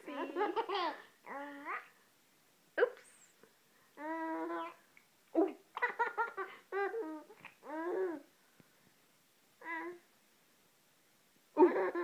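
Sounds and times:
toddler laughing: 0:00.0 - 0:01.1.

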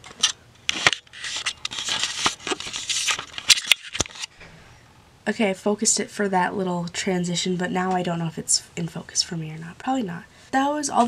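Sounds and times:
camera handling rubbing: 0:00.2 - 0:04.3.

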